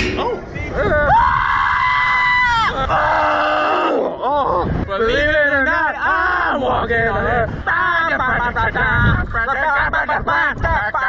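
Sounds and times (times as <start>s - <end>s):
high-pitched scream: 0.0s - 4.0s.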